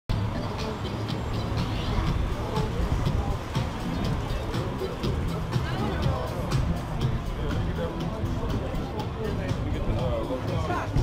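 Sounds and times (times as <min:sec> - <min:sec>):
deep street rumble: 0:00.1 - 0:11.0.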